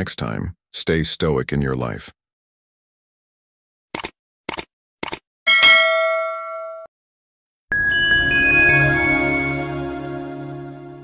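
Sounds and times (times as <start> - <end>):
short clicks: 3.9 - 5.2
bright bell ding: 5.5 - 6.9, 7.7 - 10.2
chiming music sting: 7.7 - 11.0.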